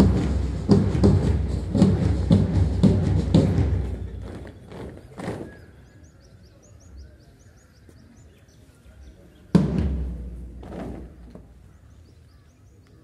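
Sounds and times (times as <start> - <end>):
marching footsteps thudding: 0.0 - 5.7, 9.6 - 11.7.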